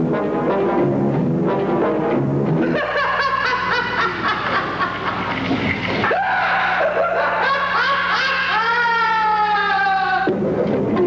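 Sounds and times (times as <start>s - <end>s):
performers shrieking: 6.0s - 10.3s.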